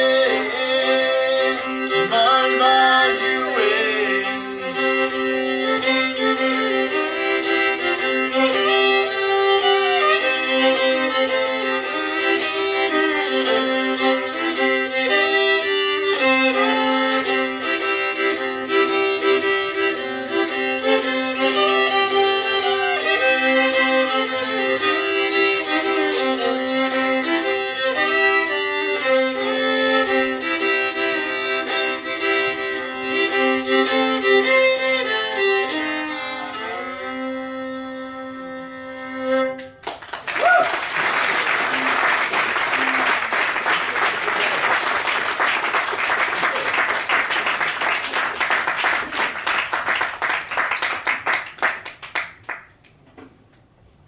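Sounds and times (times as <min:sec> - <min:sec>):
two fiddles playing: 0:00.0 - 0:39.8, 0:41.4 - 0:50.3
audience applause: 0:39.8 - 0:52.7.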